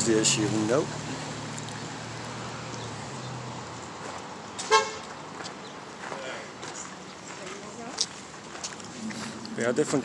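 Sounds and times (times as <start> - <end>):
street traffic hum: 0.0 - 10.0
short vehicle horn toot: 4.6 - 5.0.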